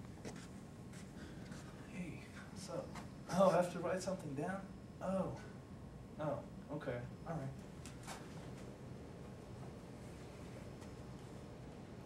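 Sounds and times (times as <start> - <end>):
soft scuffs and ticks: 0.0 - 1.8.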